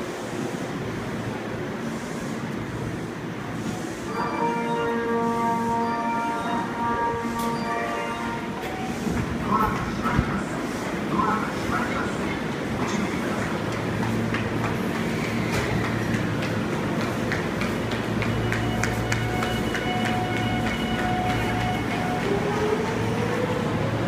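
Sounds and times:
low train motor hum: 0:00.0 - 0:24.0.

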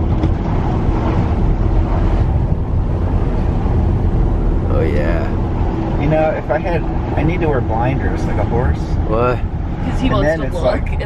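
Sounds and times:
car tyre and engine rumble: 0:00.0 - 0:11.0.

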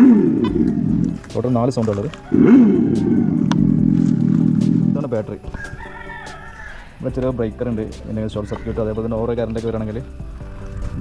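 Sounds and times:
artificial motorcycle engine drone: 0:00.0 - 0:01.5, 0:02.3 - 0:05.4.

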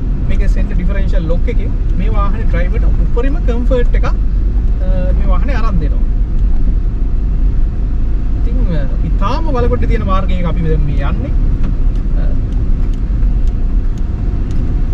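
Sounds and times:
vehicle engine rumble: 0:00.0 - 0:14.9
man talking: 0:00.3 - 0:04.2, 0:04.8 - 0:06.1, 0:08.5 - 0:11.4, 0:12.1 - 0:12.5.

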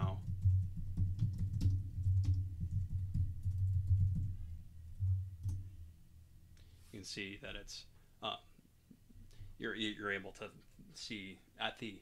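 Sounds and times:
typing on computer keyboard: 0:00.0 - 0:04.3.

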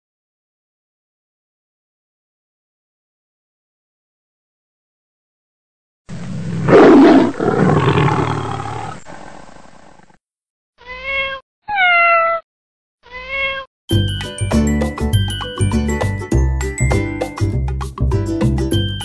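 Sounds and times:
cat meowing: 0:10.8 - 0:12.4, 0:13.0 - 0:13.7
upbeat music with mallet percussion: 0:13.9 - 0:19.0.

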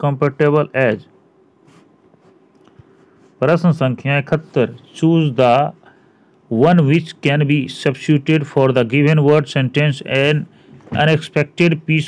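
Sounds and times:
room hiss: 0:00.0 - 0:12.0
scratch on touchscreen: 0:01.6 - 0:02.4.

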